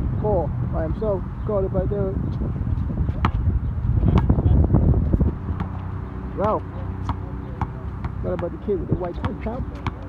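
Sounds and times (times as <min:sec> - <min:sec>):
wind on microphone: 0:00.0 - 0:06.2
basketball bouncing on court: 0:04.1 - 0:04.4, 0:05.6 - 0:05.8, 0:06.4 - 0:10.0.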